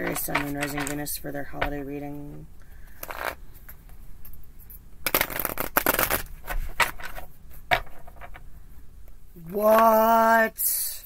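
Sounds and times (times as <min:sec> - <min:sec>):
cards being shuffled: 0:03.0 - 0:03.8, 0:05.0 - 0:08.4.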